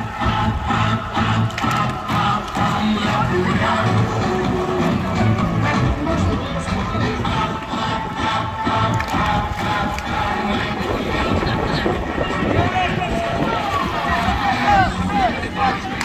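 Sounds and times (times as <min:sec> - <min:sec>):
crowd of voices: 0:00.0 - 0:16.0
upbeat dance music: 0:00.0 - 0:16.0
crowd shouting excitedly: 0:07.3 - 0:16.0.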